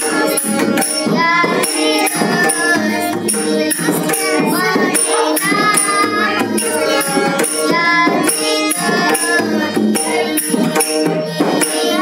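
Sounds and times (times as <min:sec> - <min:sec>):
girl singing: 0:00.0 - 0:12.0
hand drum: 0:00.0 - 0:12.0
harmonium chords: 0:00.0 - 0:12.0.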